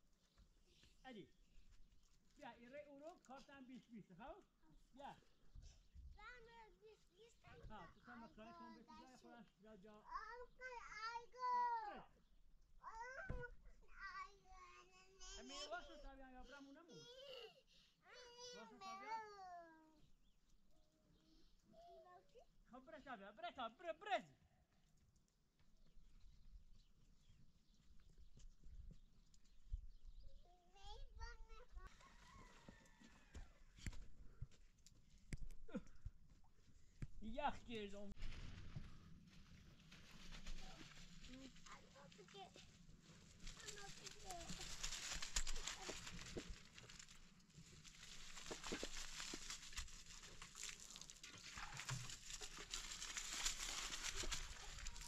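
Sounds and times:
faint voices or animal calls: 31.8s - 33.7s
stone roller scraping on earth: 38.2s - 55.0s.

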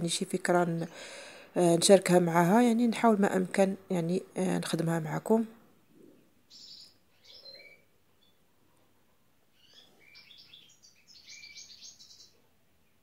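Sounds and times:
faint bird chirping: 5.7s - 13.0s.

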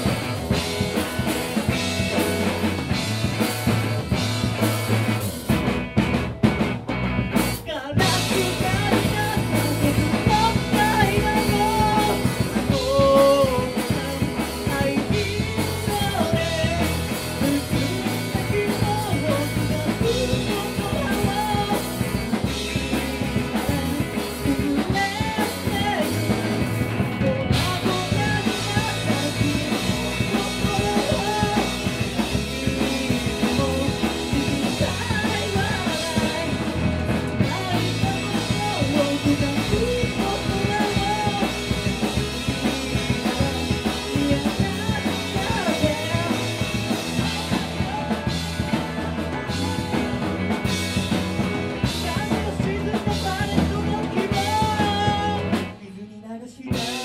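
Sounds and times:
sung lead vocal: 0.0s - 5.3s, 7.4s - 57.0s
live rock band playing: 0.0s - 57.0s.

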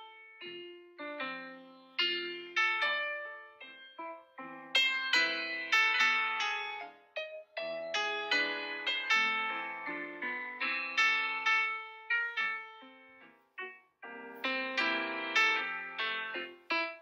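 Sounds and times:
solo piano chords: 0.0s - 17.0s.

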